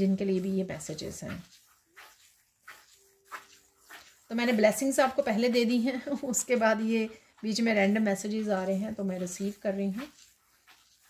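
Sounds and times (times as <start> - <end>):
fingers swishing through sand: 0.0 - 11.0.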